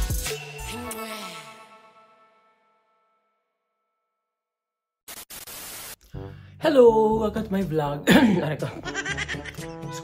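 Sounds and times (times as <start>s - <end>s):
static hiss: 5.1s - 6.0s.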